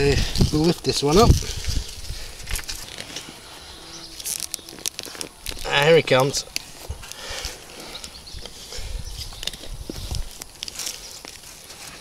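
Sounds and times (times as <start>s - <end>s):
earth and roots crackling: 0.0s - 12.0s.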